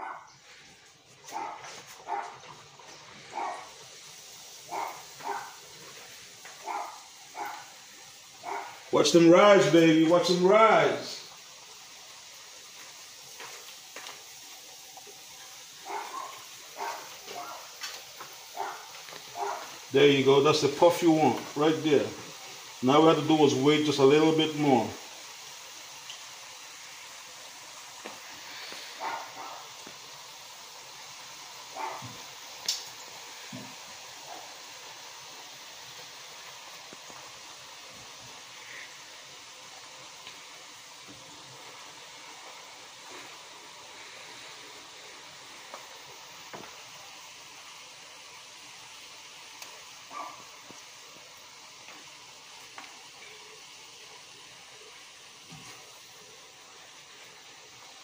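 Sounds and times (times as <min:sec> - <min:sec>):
dough sizzling in hot oil: 0:00.0 - 0:58.0.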